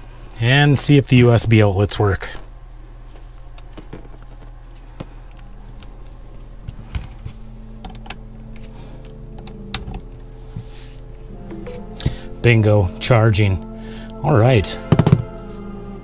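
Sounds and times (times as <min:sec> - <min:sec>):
soft background music: 0:07.2 - 0:16.0.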